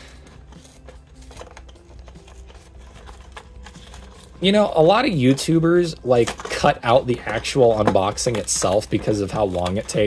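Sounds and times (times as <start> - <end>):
plastic blister pack crinkling: 0.0 - 10.0.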